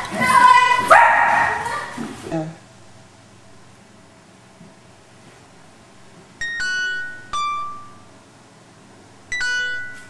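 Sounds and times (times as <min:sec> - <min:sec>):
descending three-note chime: 0:06.4 - 0:08.1, 0:09.3 - 0:10.0.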